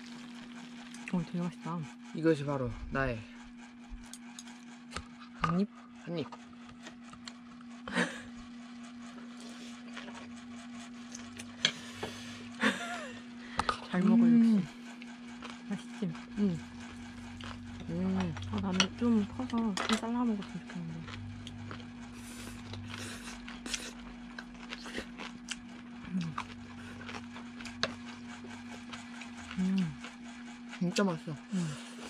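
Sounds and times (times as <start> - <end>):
steady low hum: 0.0 - 32.0
chewing: 14.6 - 30.7
hummed voice murmurs: 15.8 - 17.1, 29.5 - 30.0.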